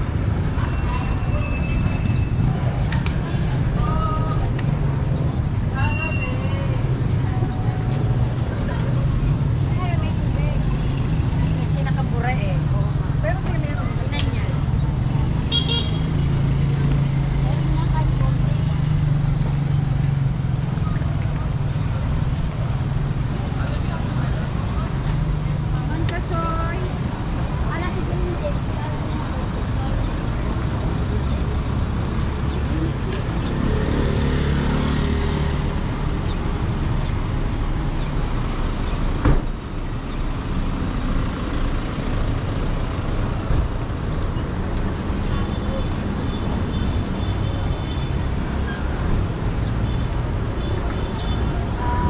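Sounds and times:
low traffic hum: 0.0 - 52.0
passers-by talking: 0.0 - 52.0
vehicle engines idling and passing: 0.0 - 52.0.

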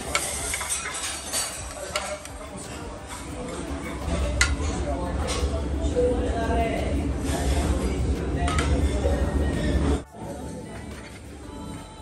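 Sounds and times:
metal utensils clinking on ceramic: 0.0 - 5.5
restaurant chatter: 0.0 - 12.0.

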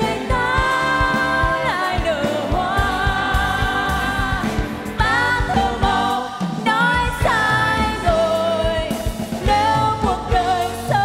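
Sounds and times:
backing singers holding notes: 0.0 - 8.6
live band playing ballad: 0.0 - 11.0
woman singing lead: 0.0 - 11.0.

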